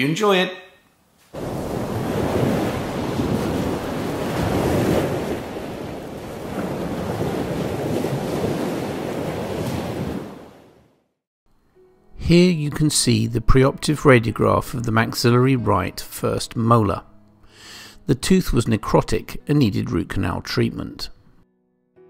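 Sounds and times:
wind: 0:01.1 - 0:10.8
sea waves washing in: 0:01.2 - 0:11.2.

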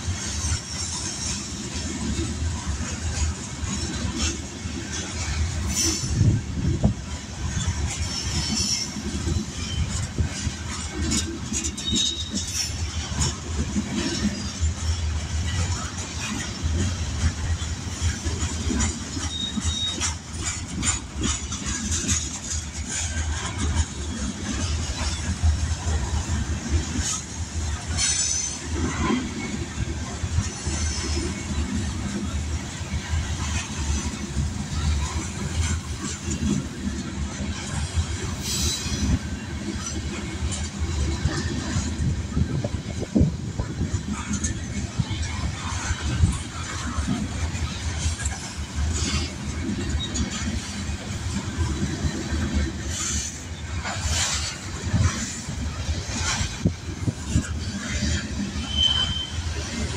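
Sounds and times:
train wheels rumbling on rail: 0:00.0 - 0:59.9
wheels clanking over rail joints: 0:00.0 - 0:59.9.

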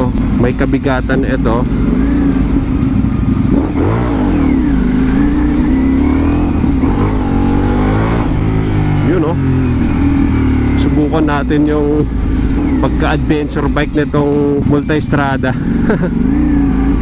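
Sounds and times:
motorcycle engine pulling away: 0:00.0 - 0:17.0.

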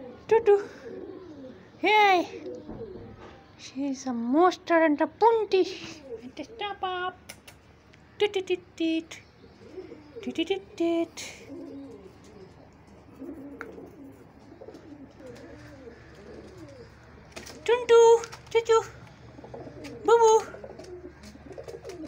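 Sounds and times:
pigeon cooing: 0:00.0 - 0:03.6, 0:05.8 - 0:07.7, 0:09.4 - 0:22.0
person calling out loudly: 0:19.9 - 0:20.7.

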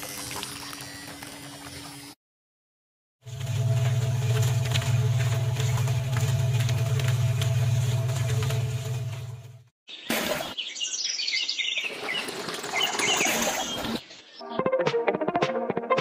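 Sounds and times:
outdoor background noise: 0:00.0 - 0:02.2, 0:03.2 - 0:14.4
birds chirping: 0:09.9 - 0:14.6.

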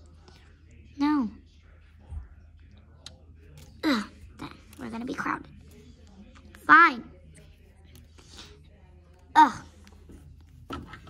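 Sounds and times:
soft whispering: 0:00.0 - 0:10.6.

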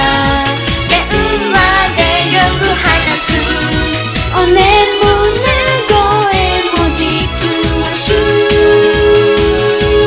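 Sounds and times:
upbeat pop song with singing: 0:00.0 - 0:10.0.

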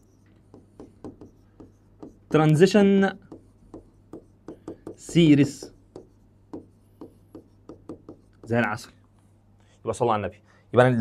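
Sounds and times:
stylus tapping and scratching on screen: 0:00.0 - 0:09.7.

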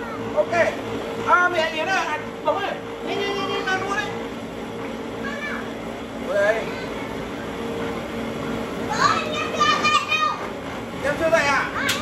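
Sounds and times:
children calling and chattering: 0:00.0 - 0:00.8, 0:03.0 - 0:12.0
steady low hum: 0:00.0 - 0:12.0.

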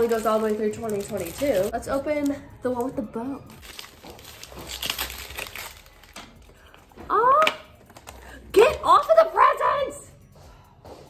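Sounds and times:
wrapping paper crinkling and tearing: 0:00.0 - 0:02.8, 0:03.5 - 0:06.8.

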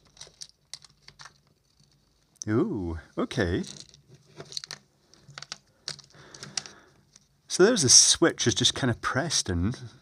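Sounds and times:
small plastic and metal clicks: 0:00.0 - 0:02.5, 0:03.7 - 0:07.3.

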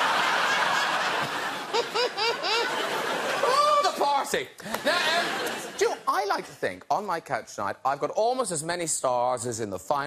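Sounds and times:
audience laughing: 0:00.0 - 0:06.4.

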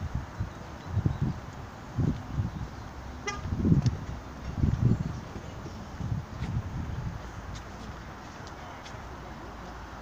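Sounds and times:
wind buffeting microphone: 0:00.0 - 0:08.4
car horn toot: 0:03.2 - 0:03.5.

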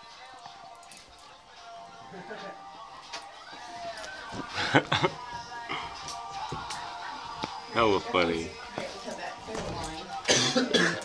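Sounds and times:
person coughing: 0:10.2 - 0:11.0.

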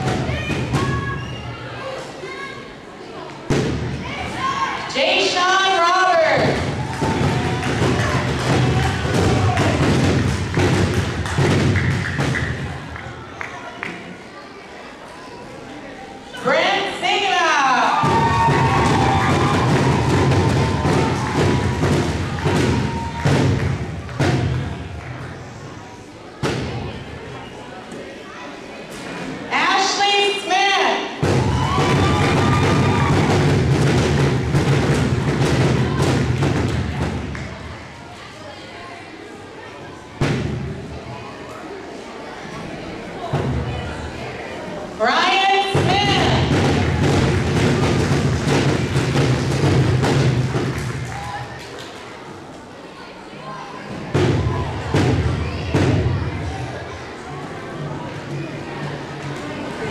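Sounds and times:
crowd cheering: 0:06.3 - 0:14.4, 0:17.6 - 0:25.9, 0:31.0 - 0:38.1, 0:45.6 - 0:52.7, 0:53.9 - 0:59.9
audience applauding: 0:06.8 - 0:14.1, 0:18.2 - 0:24.2, 0:50.2 - 0:52.1.

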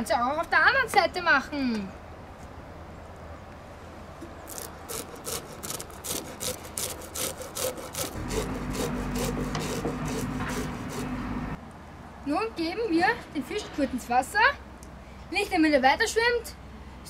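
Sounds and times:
fish scaler scraping scales: 0:04.4 - 0:11.2.

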